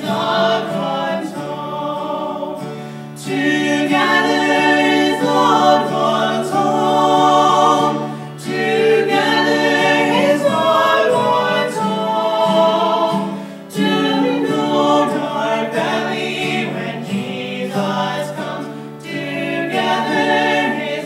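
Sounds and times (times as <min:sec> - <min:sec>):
people singing in harmony: 0:00.0 - 0:21.0
strummed acoustic guitar: 0:00.0 - 0:21.0.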